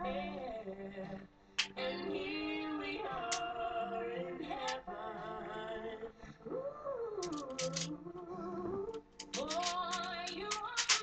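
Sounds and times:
music: 0.0s - 11.0s
woman singing: 0.0s - 11.0s.

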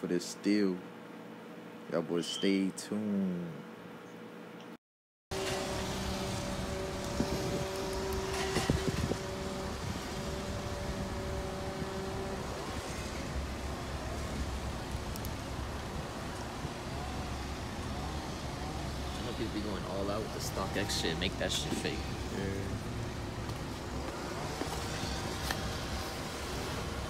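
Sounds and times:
car driving rumble: 5.4s - 27.0s.

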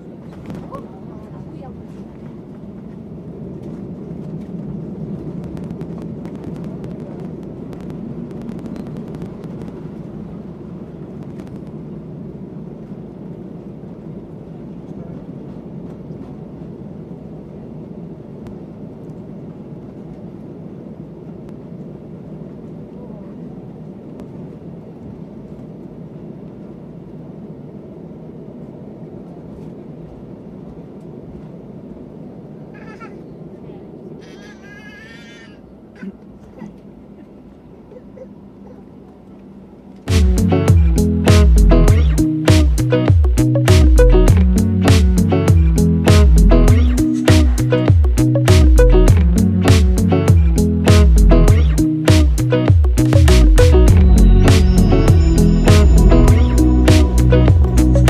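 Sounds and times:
airliner rolling on runway: 0.0s - 58.0s
jet engines rumbling: 0.0s - 58.0s.

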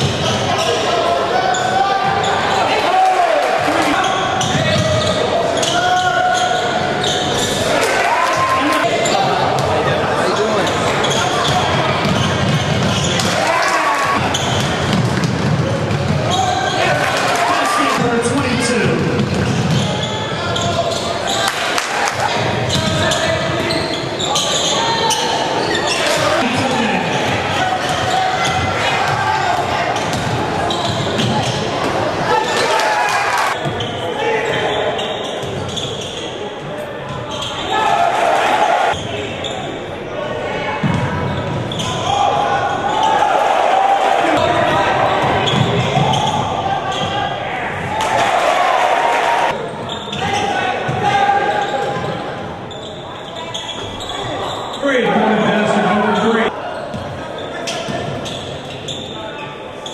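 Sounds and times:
echoing crowd voices: 0.0s - 59.9s
basketball dribbling on court: 14.2s - 16.3s.

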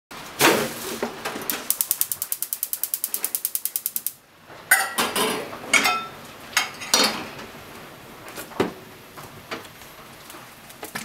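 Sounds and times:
gas stove igniter clicking: 1.5s - 4.2s
metal pans clanking on grates: 4.7s - 7.3s.

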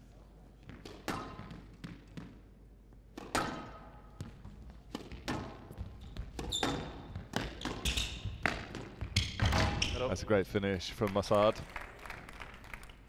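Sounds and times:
squash ball hitting rackets and walls: 0.6s - 10.0s
shoes squeaking on court floor: 3.3s - 10.2s.

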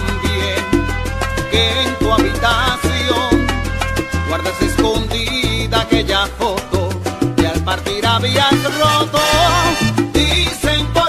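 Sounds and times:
salsa music: 0.0s - 11.0s.

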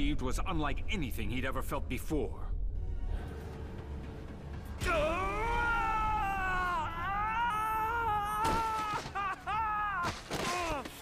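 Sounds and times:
long high scream of pain: 4.8s - 10.9s.

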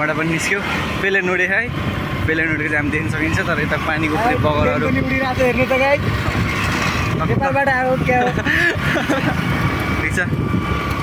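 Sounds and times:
vehicle running noise: 0.0s - 11.0s.

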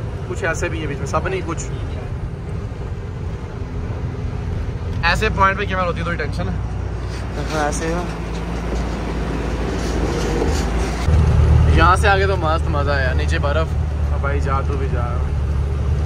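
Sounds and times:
truck diesel engine rumbling: 0.0s - 16.0s.

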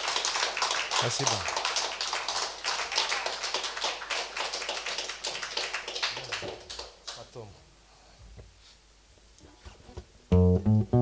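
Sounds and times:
small audience applauding: 0.0s - 7.5s.

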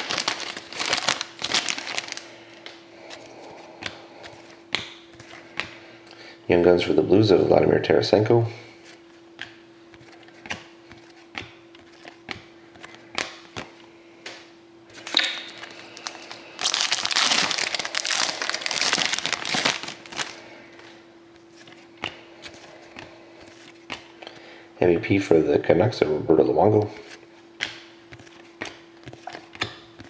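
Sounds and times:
wrapper tearing and crinkling: 0.0s - 2.3s, 15.0s - 20.4s
faint steady hum: 0.0s - 30.0s.

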